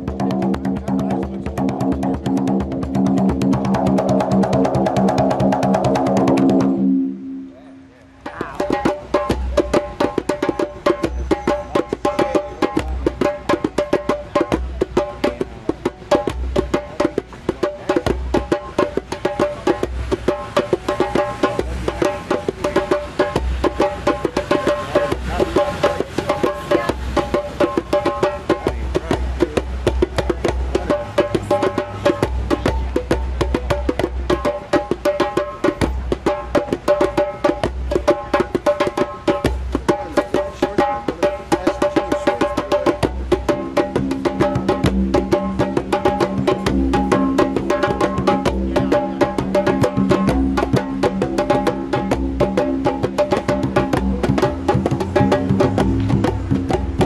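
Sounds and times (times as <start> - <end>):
barrel drum roll: 0.0 - 7.2, 8.2 - 57.0
hand drums playing fast rhythm: 0.0 - 7.2, 8.1 - 57.0.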